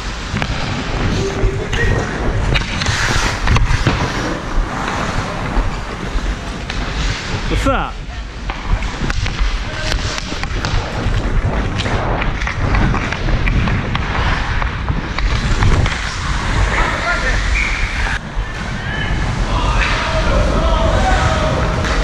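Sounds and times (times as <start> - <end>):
skate blades scraping ice: 0.0 - 18.2
wind rumble on microphone: 0.0 - 22.0.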